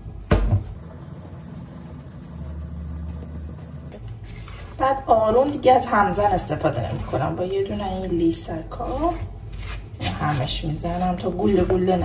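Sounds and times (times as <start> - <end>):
steady low hum: 0.0 - 12.0
flour sifting through mesh sieve: 1.6 - 12.0.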